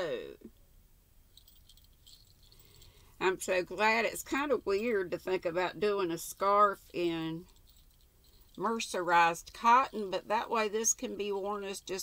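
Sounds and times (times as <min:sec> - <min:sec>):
woman's voice: 0:00.0 - 0:00.5, 0:03.2 - 0:07.5, 0:08.6 - 0:12.0
objects clicking and rustling: 0:01.3 - 0:03.2, 0:07.4 - 0:08.7.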